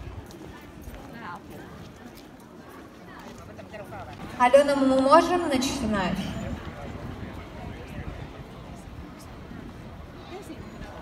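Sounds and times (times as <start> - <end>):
footsteps on cobblestones: 0.0 - 5.7
passers-by voices: 0.0 - 11.0.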